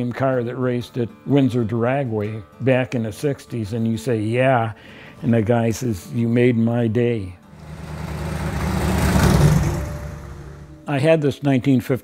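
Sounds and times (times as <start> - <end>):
drag car engine driving past: 7.5 - 10.9.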